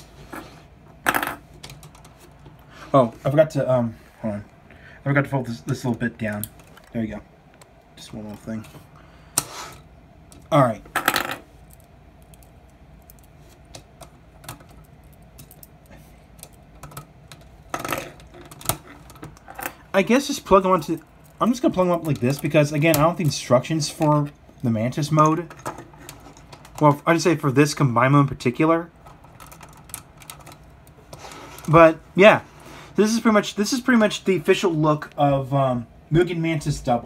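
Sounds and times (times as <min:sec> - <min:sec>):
plastic toy parts clicking and rattling: 0:11.7 - 0:19.8, 0:29.0 - 0:31.0.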